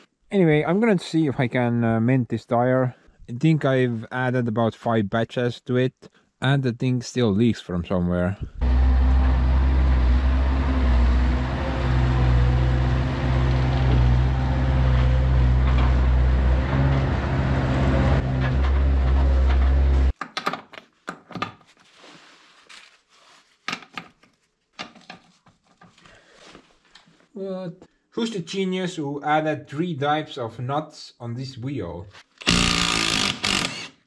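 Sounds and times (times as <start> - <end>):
diesel engine running: 8.6 - 20.1.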